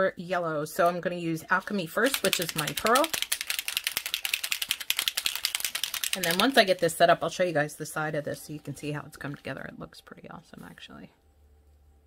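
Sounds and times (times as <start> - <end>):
ball rattling in shaken bottle: 1.8 - 7.1.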